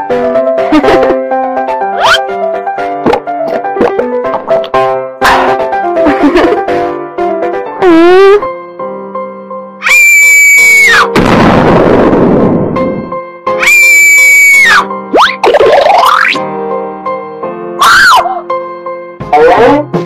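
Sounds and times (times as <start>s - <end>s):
cartoon background music: 0.0s - 9.0s, 9.8s - 20.0s.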